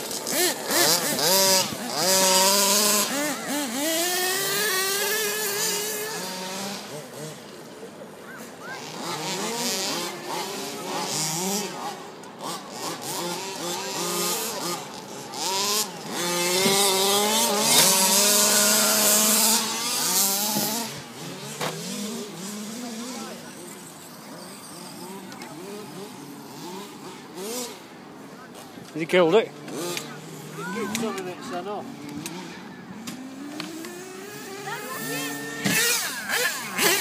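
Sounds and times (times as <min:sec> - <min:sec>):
model truck motor whining: 0:08.9 - 0:27.8, 0:32.1 - 0:37.0.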